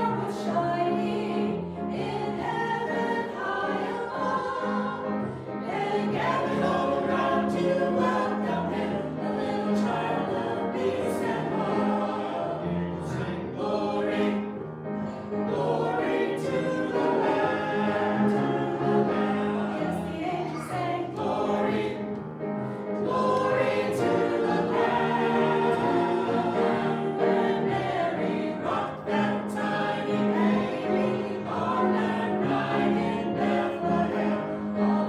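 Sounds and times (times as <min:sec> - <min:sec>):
mixed choir singing: 0:00.0 - 0:35.0.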